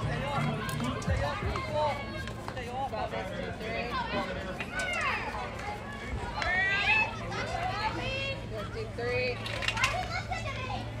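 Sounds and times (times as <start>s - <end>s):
girls calling and chattering: 0.0s - 11.0s.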